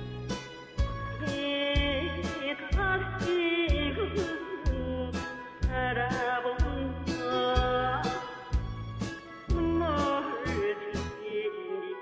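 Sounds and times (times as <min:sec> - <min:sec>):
bass line: 0:00.0 - 0:11.1
karaoke backing track: 0:00.0 - 0:12.0
woman singing: 0:01.2 - 0:08.7, 0:09.4 - 0:12.0.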